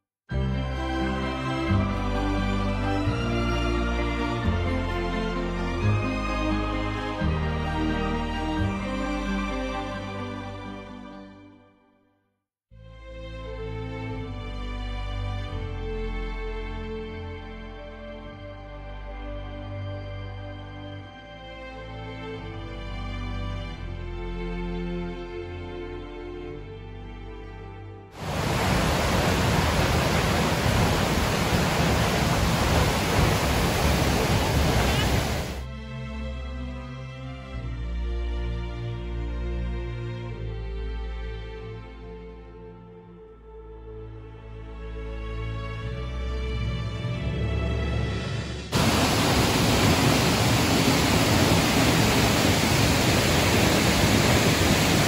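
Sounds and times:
rush of falling water: 0:28.2 - 0:35.6, 0:48.7 - 0:55.0.

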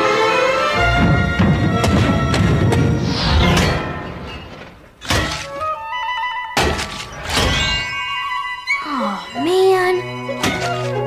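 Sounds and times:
rising stepped music notes: 0:02.3 - 0:05.0.

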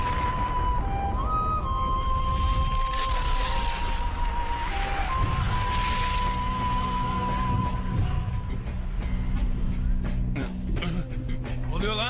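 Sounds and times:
deep rumble: 0:00.0 - 0:11.7
rushing hiss: 0:02.1 - 0:08.1.

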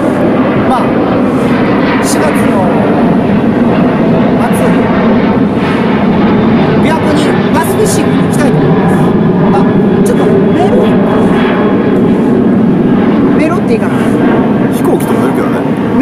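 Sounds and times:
airplane flying overhead: 0:00.0 - 0:16.0.

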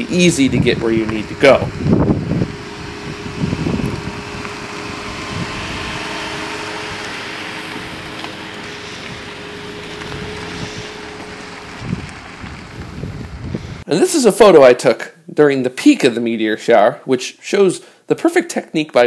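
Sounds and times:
car engine running: 0:00.0 - 0:13.8
tyres on sand and gravel: 0:00.0 - 0:14.7.

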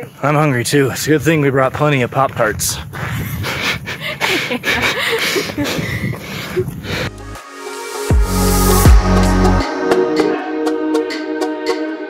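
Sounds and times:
wind on microphone: 0:02.3 - 0:07.1
person panting: 0:02.7 - 0:07.4
person laughing breathily: 0:03.3 - 0:07.2.

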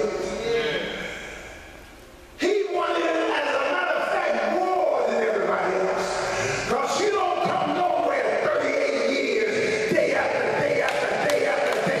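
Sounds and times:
man speaking over sound system: 0:00.0 - 0:01.6, 0:02.4 - 0:12.0.

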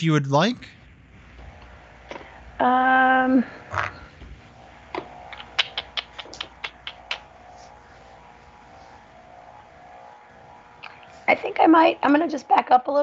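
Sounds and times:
faint steady hum: 0:00.0 - 0:13.0
sharp computer clicks: 0:04.9 - 0:07.4.

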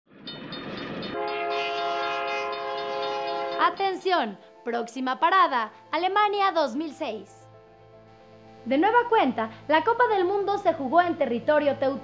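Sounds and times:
train rumble: 0:00.4 - 0:03.8
train horn chord: 0:01.1 - 0:03.8.

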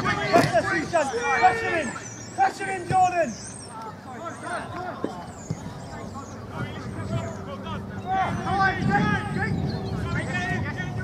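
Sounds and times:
distant players shouting: 0:00.0 - 0:11.0.

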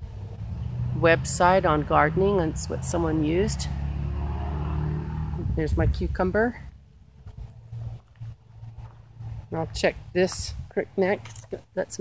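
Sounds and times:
wind buffeting microphone: 0:05.3 - 0:10.8.

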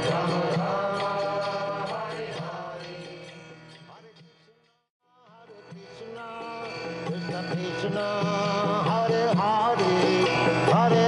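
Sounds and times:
devotional chant: 0:00.0 - 0:11.0.

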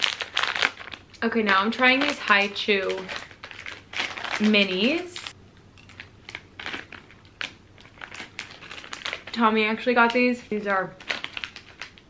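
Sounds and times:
plastic packet crinkling: 0:00.0 - 0:12.0.

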